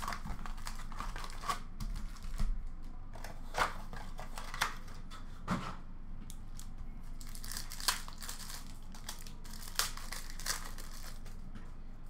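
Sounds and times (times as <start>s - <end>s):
foil wrapper crinkling: 0.0s - 2.4s, 6.6s - 11.4s.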